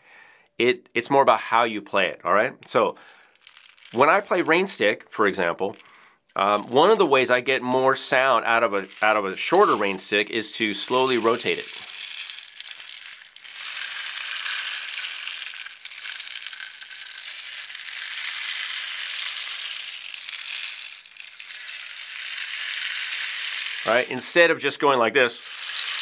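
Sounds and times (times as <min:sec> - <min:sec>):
rain stick trickling: 0:03.0 - 0:04.8, 0:05.6 - 0:24.4, 0:25.4 - 0:26.0.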